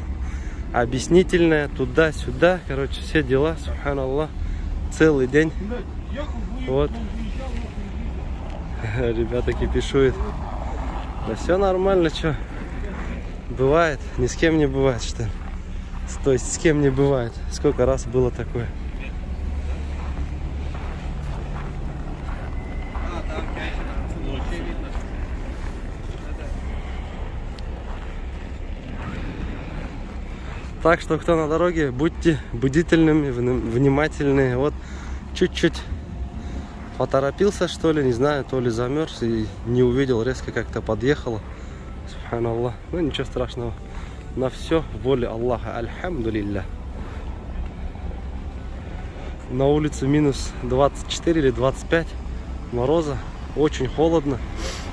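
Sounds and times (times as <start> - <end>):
car engines idling: 0.0 - 54.9.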